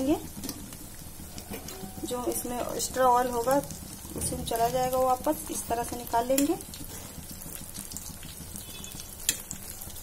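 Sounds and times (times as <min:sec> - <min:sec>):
oil sizzling: 0:00.0 - 0:10.0.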